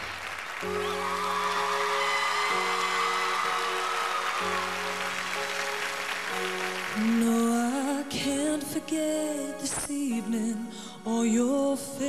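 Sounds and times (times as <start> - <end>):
audience applause: 0.0 - 7.7.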